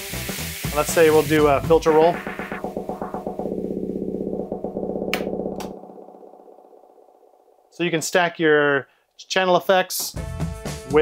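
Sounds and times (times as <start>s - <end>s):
music chopped into rapid stutter: 0.7s - 6.9s.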